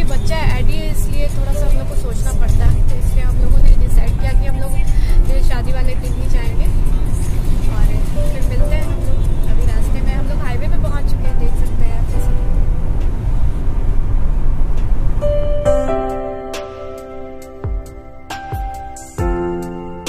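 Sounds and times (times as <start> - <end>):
woman talking: 0.0 - 6.8, 7.6 - 12.5
car cabin rumble: 0.0 - 16.3.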